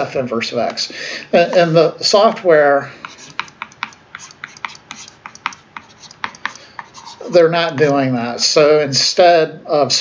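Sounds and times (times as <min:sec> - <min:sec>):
stylus tapping on tablet screen: 0:03.0 - 0:07.0.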